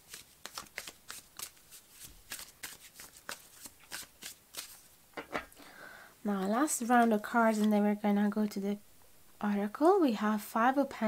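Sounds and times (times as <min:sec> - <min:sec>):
cards being shuffled: 0:00.0 - 0:05.5.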